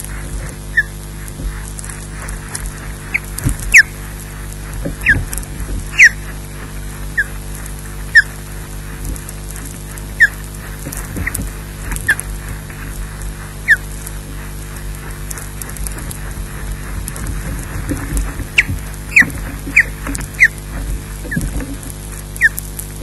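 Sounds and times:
low electrical hum: 0.0 - 23.0
osprey whistling calls: 0.6 - 1.0, 3.1 - 4.0, 5.0 - 6.3, 7.1 - 7.4, 8.1 - 8.4, 10.1 - 10.4, 13.6 - 13.9, 18.5 - 20.6, 22.4 - 22.6.

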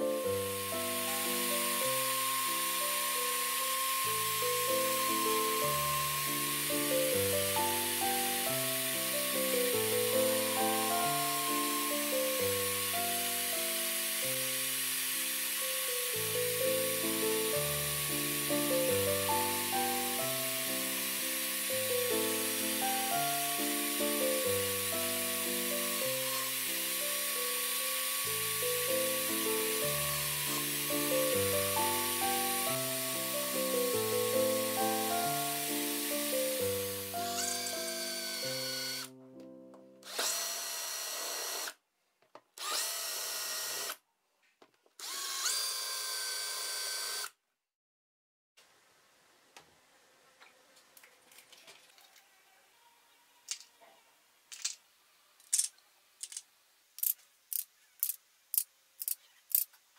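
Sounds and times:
electric drill whining: 0.0 - 39.2, 40.0 - 41.8, 42.6 - 44.0, 45.0 - 47.4.

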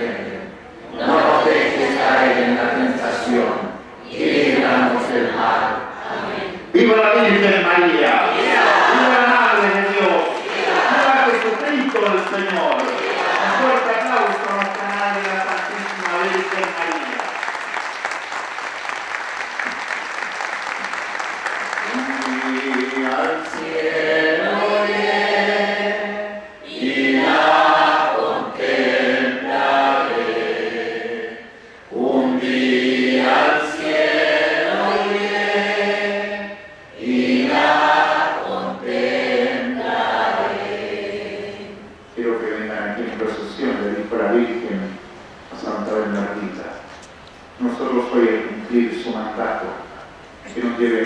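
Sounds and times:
group singing a hymn: 0.0 - 14.5, 21.8 - 44.6
clapping: 9.6 - 23.7.

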